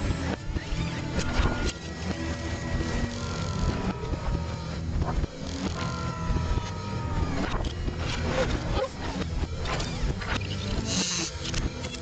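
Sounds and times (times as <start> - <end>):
low mechanical rumble: 0.0 - 12.0.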